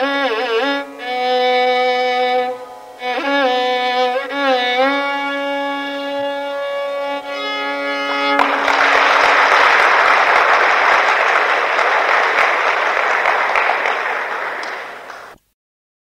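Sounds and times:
violin holding a long note: 0:00.0 - 0:15.4
audience applause: 0:08.1 - 0:15.4.

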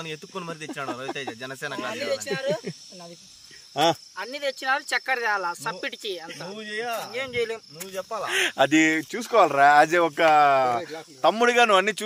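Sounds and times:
men talking: 0:00.0 - 0:02.7, 0:05.6 - 0:07.1, 0:07.8 - 0:12.0
crickets chirping: 0:00.0 - 0:12.0.

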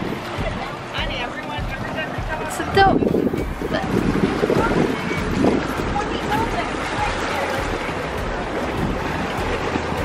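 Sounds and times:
motorboat running: 0:00.0 - 0:10.0
wind buffeting microphone: 0:00.0 - 0:10.0.

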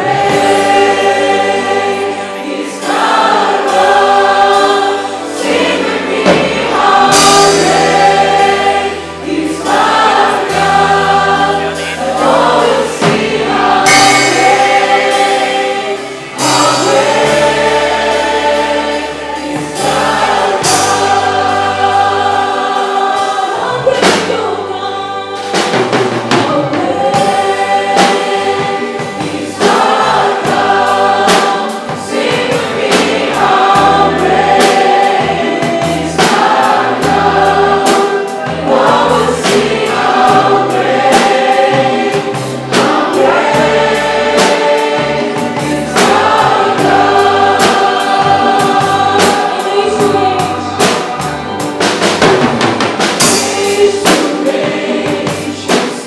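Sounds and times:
choir singing worship song: 0:00.0 - 0:56.0
live band with drums and bass: 0:00.0 - 0:56.0.

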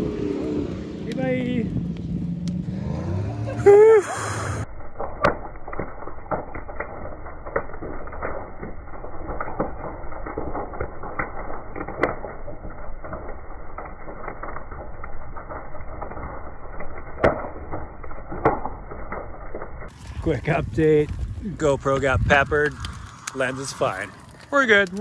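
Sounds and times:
fire crackling and popping: 0:00.0 - 0:25.0
low rumble of fire: 0:00.0 - 0:25.0
sharp pops: 0:05.0 - 0:12.4, 0:17.2 - 0:19.2, 0:21.0 - 0:25.0.

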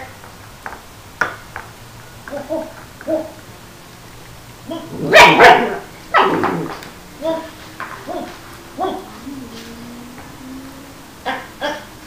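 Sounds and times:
puppy yipping and whining: 0:04.7 - 0:06.8, 0:08.0 - 0:10.0
puppy barking: 0:04.7 - 0:12.0.

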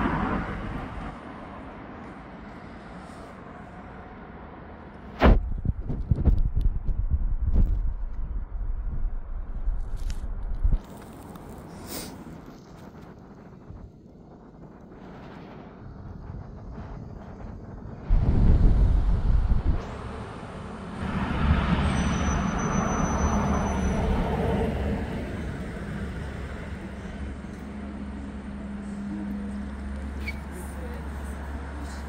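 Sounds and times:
car passing: 0:00.0 - 0:05.2, 0:10.8 - 0:32.0
low engine hum: 0:00.0 - 0:32.0
loud low rumble: 0:12.2 - 0:30.2.

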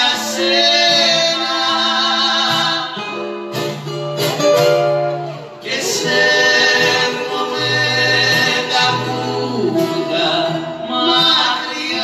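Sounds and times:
acoustic guitar and bouzouki: 0:00.0 - 0:12.0.

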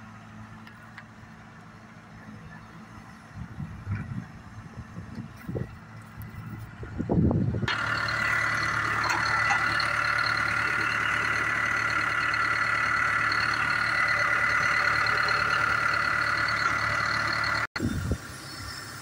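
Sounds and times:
excavator diesel engine running: 0:00.0 - 0:19.0.

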